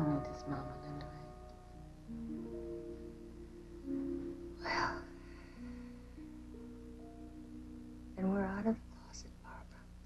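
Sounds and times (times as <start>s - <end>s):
woman speaking quietly: 8.2s - 9.8s.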